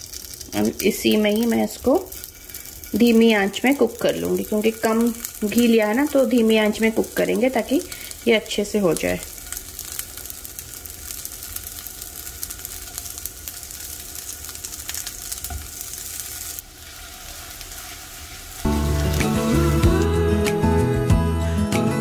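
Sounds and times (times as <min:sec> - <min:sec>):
patties sizzling in pan: 0:00.0 - 0:21.0
loud background music: 0:18.7 - 0:22.0.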